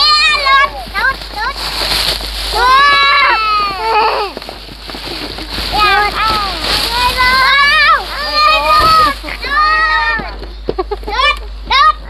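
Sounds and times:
high-pitched voices calling out: 0.0 - 1.7, 2.5 - 4.4, 5.5 - 12.0
plastic bag crinkling: 0.0 - 10.3.

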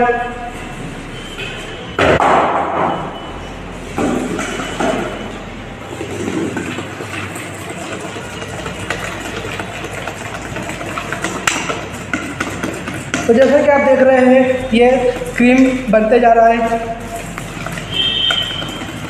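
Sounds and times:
whisk scraping steel bowl: 3.8 - 19.0.

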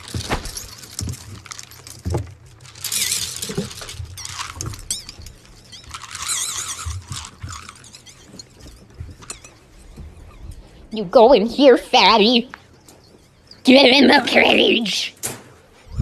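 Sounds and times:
high-pitched wavering squeals: 2.7 - 10.8.

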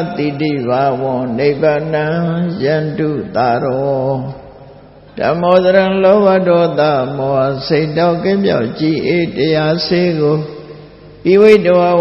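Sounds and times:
monk chanting in monotone: 0.0 - 12.0.

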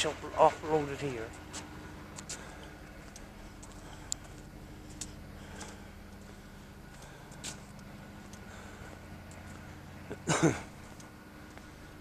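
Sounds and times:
steady low hum: 0.0 - 12.0
man laughing: 10.0 - 10.8.

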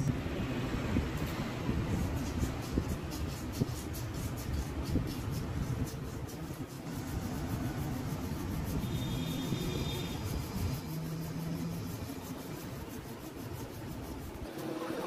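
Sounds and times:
motor vehicles rumbling: 0.0 - 15.0.

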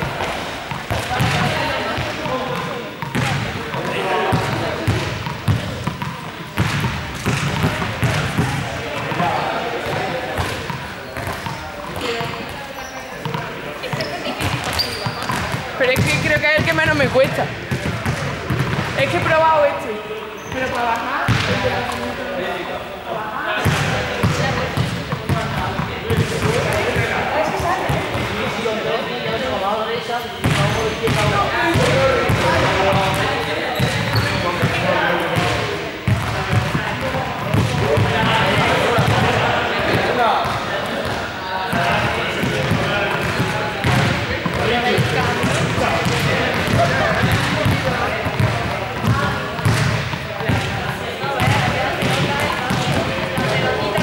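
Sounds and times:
balls bouncing on hard floor: 0.0 - 19.7, 20.4 - 22.1, 23.6 - 28.6, 30.4 - 54.0
young people talking and calling out: 0.0 - 54.0.

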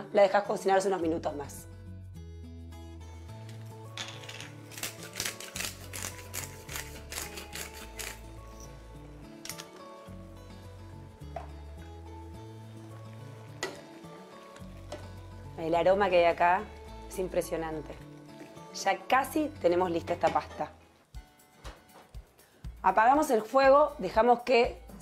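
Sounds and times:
spice mill clicking: 4.7 - 8.3
background music with bass line: 5.7 - 18.2.

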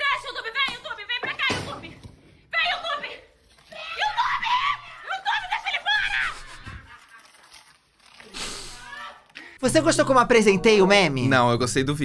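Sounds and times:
high-pitched laughing and squealing: 4.0 - 10.4
breathy burst: 8.2 - 9.6.

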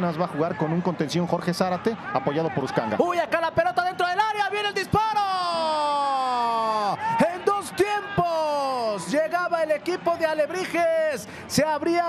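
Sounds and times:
male commentator shouting: 0.2 - 12.0
male commentator excited calls: 1.5 - 12.0.

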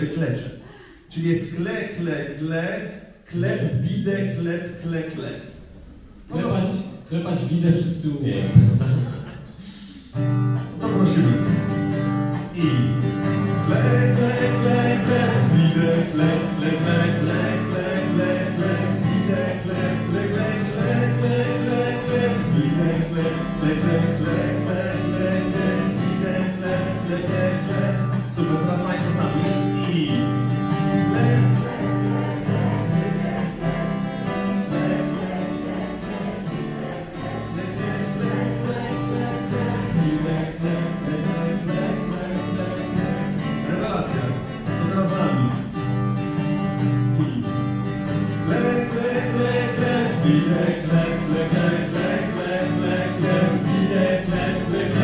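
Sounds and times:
acoustic guitar strumming: 5.6 - 7.1, 8.3 - 55.0
voices singing together: 12.6 - 45.4, 48.1 - 55.0.

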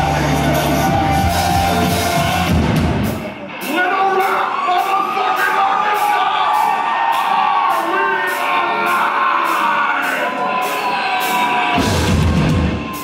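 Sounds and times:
crowd noise: 0.0 - 13.0
live heavy band playing: 0.0 - 13.0.

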